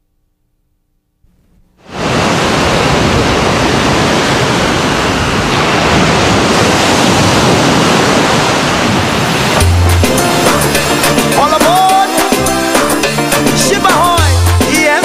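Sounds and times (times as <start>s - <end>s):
ocean waves on beach: 1.8s - 15.0s.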